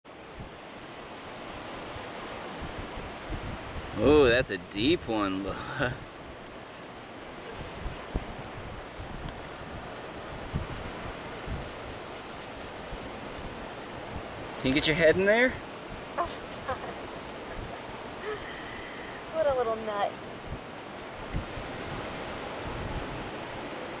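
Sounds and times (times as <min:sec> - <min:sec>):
wind: 0:00.0 - 0:24.0
surf rushing: 0:00.1 - 0:24.0
wind buffeting microphone: 0:00.2 - 0:24.0.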